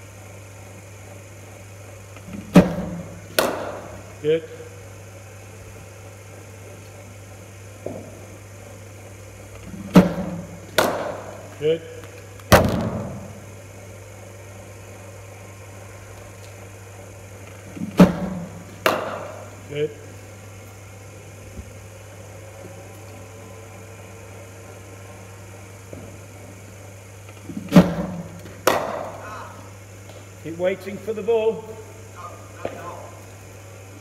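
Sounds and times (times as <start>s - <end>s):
steady low hum: 0.0s - 34.0s
cricket bat striking balls: 2.3s - 4.1s, 9.7s - 11.5s, 12.5s - 13.3s, 17.7s - 19.6s, 27.5s - 29.2s, 32.5s - 32.9s.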